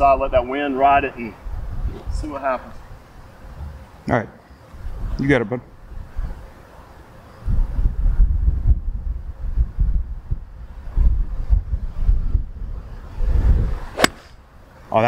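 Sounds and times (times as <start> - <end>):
wind buffeting microphone: 0.0 - 3.9, 4.8 - 6.5, 7.4 - 14.4
golf club striking ball: 14.0 - 14.4.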